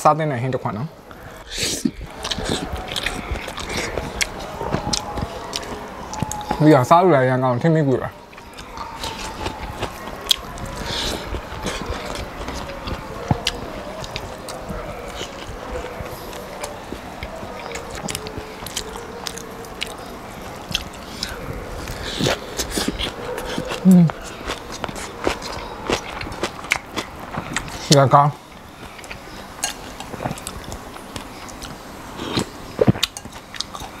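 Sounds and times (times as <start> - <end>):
low vocal hum: 0.9 - 6.6, 8.1 - 27.9
chewing and biting: 2.0 - 6.8, 8.2 - 34.0.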